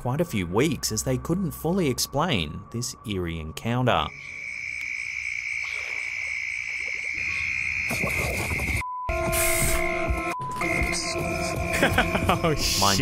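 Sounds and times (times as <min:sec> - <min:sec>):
night insects chirring: 0:00.4 - 0:09.9, 0:10.6 - 0:13.0.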